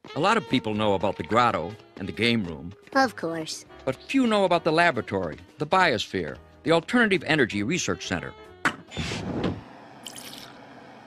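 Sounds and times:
door opening swish: 0:08.9 - 0:09.6
liquid dripping in glassware: 0:10.0 - 0:10.6.

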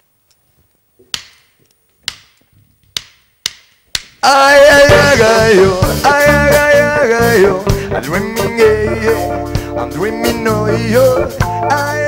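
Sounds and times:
drumstick clicks: 0:01.0 - 0:04.2
live reggae band: 0:04.2 - 0:12.0
person singing: 0:04.2 - 0:12.0.

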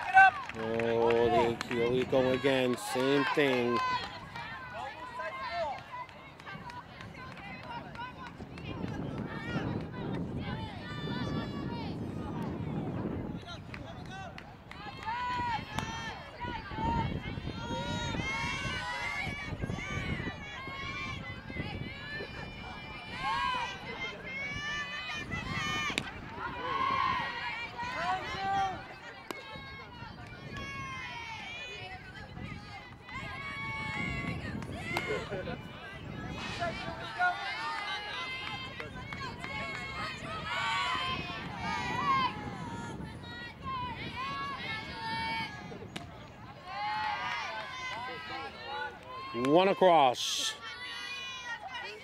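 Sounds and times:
young voices shouting: 0:14.8 - 0:45.8, 0:46.4 - 0:52.0
girls shouting drawn-out calls: 0:46.6 - 0:52.0.

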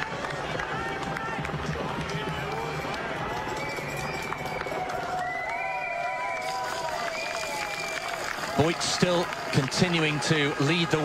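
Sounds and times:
crowd cheering and calling: 0:00.0 - 0:11.0.

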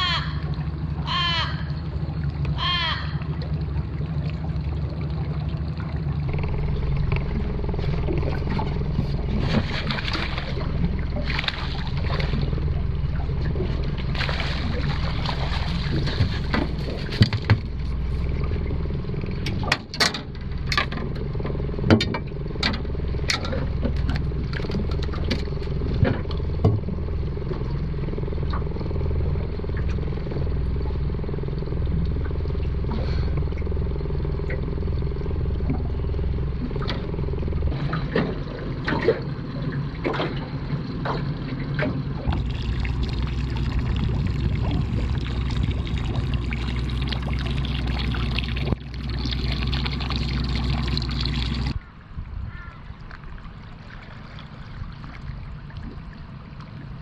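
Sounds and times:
outboard motor running: 0:00.0 - 0:57.0.

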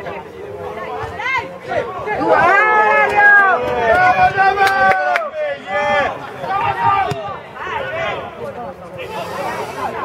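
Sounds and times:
men shouting and calling: 0:01.2 - 0:08.4.

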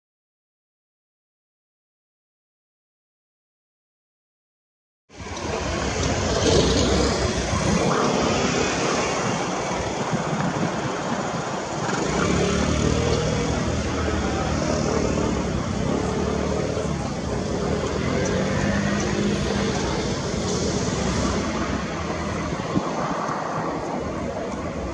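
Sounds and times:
jet engines rumbling: 0:05.1 - 0:24.9.

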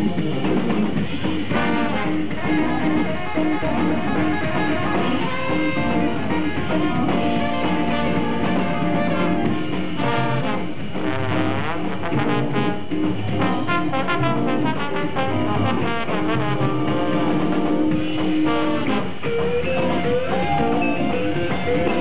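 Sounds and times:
jazz-funk band playing: 0:00.0 - 0:22.0
horn section: 0:01.1 - 0:22.0.

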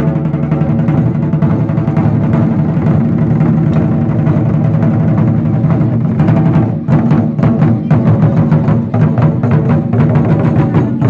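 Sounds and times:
large drums beaten fast: 0:00.0 - 0:11.0.

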